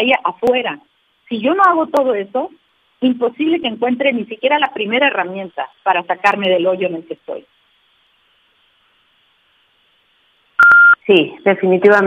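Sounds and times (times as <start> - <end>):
short electronic beep: 10.6 - 11.0.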